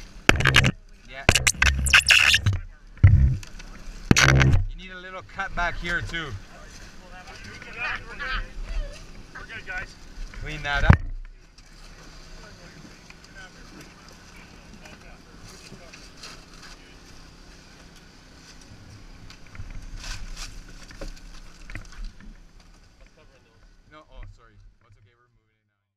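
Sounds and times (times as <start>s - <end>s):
power unit engine humming: 0.0s - 23.9s.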